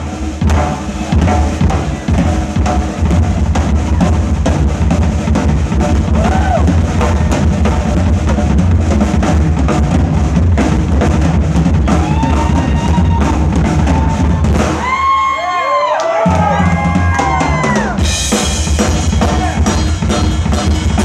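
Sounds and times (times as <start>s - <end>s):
fast bass drums: 0.0s - 15.4s, 16.2s - 21.0s
live rock music: 0.0s - 21.0s.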